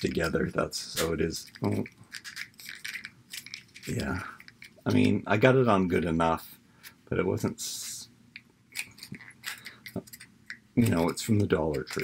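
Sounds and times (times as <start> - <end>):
plastic pieces clicking: 0.0 - 5.2, 8.4 - 12.0.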